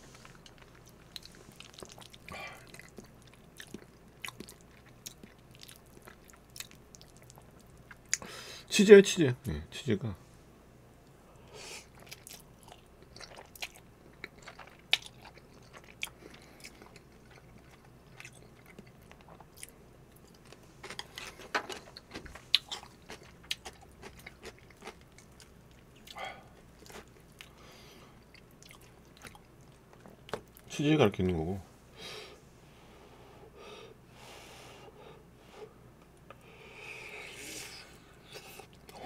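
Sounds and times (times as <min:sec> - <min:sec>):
man chewing noodles: 0:00.0 - 0:08.3, 0:11.7 - 0:30.7, 0:36.2 - 0:39.0.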